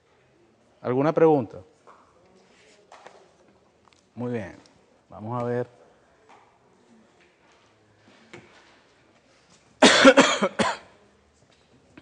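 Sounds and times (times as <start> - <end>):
person coughing: 9.8 - 10.9.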